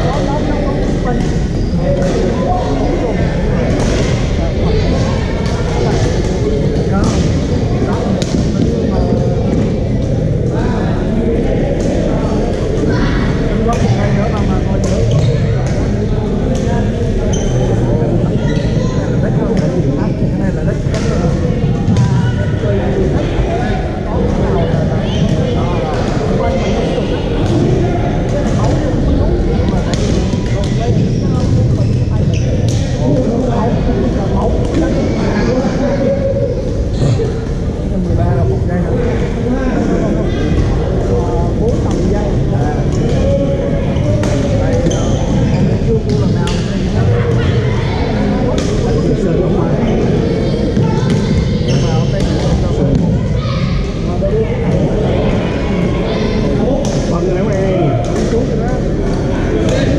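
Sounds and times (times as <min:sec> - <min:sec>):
echoing sports hall din: 0:00.0 - 0:59.9
voices in sports hall: 0:00.0 - 0:59.9
shoes squeaking on floor: 0:17.3 - 0:17.7.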